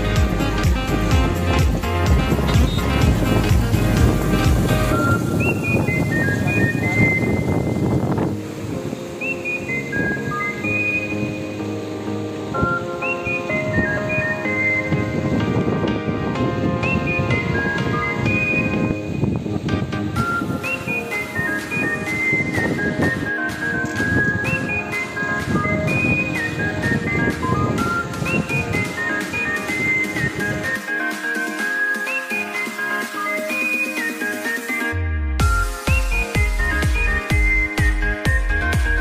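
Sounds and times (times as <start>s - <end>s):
background music with high melody: 0.0s - 39.0s.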